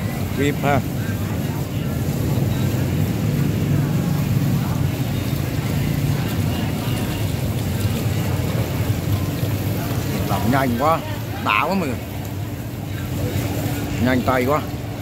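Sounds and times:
water from hose splashing into basin: 0.0s - 15.0s.

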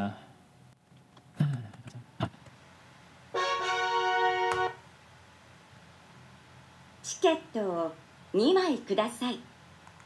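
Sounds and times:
bright chord of held tones: 3.4s - 4.8s.

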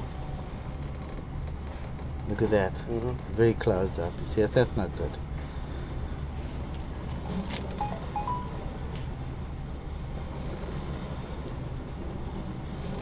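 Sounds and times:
short high tones: 7.8s - 8.8s.

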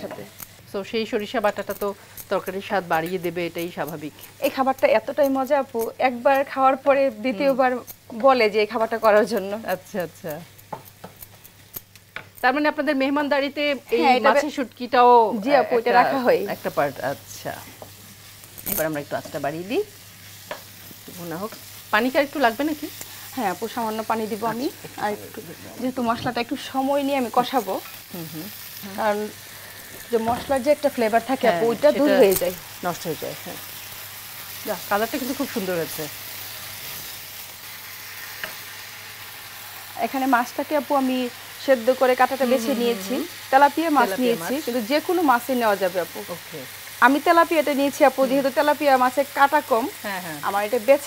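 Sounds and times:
woman talking: 0.0s - 10.4s, 12.4s - 17.7s, 21.1s - 29.4s, 30.1s - 33.6s, 34.6s - 36.1s, 40.0s - 51.0s
food sizzling in a pan: 0.0s - 51.0s.

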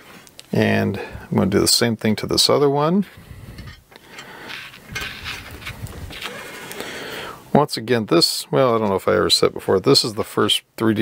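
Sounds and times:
cable rustling against metal frame: 3.0s - 6.8s.

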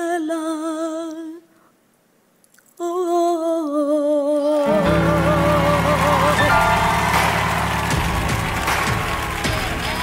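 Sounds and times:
audience applauding: 4.6s - 10.0s
backing music chord: 4.8s - 10.0s.

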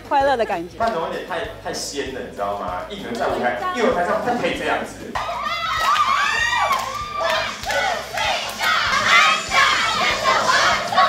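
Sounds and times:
young women shouting a cheer chant: 5.2s - 11.0s.

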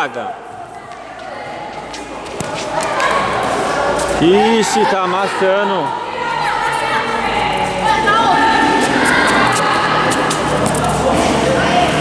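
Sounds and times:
children chattering: 0.5s - 12.0s
ball being struck: 1.2s - 3.2s.

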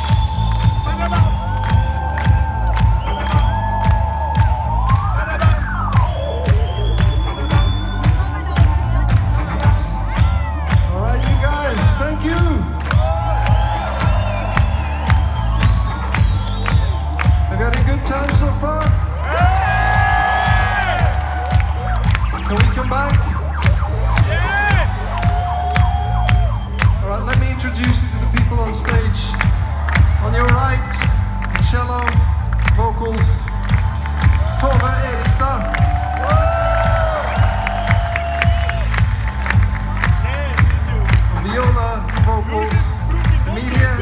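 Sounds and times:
crowd cheering: 0.0s - 44.0s
kick drum beating: 0.1s - 44.0s.

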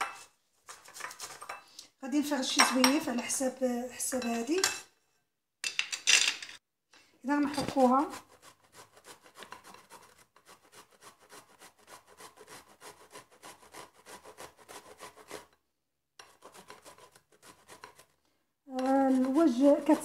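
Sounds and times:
cucumber scraping on metal grater: 7.3s - 15.6s, 16.2s - 20.0s.

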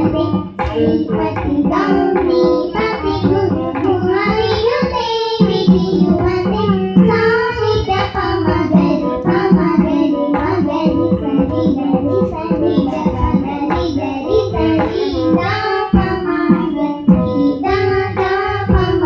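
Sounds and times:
girls singing in unison: 0.0s - 19.0s
hand-played barrel drum: 0.0s - 19.0s.

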